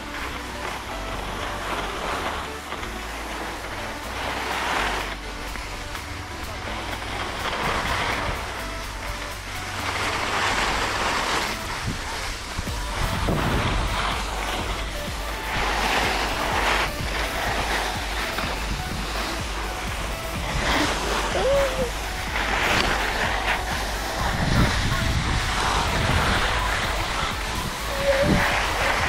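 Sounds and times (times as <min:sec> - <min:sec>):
skis scraping on snow: 0:00.0 - 0:29.0
wind rumble on microphone: 0:00.0 - 0:29.0.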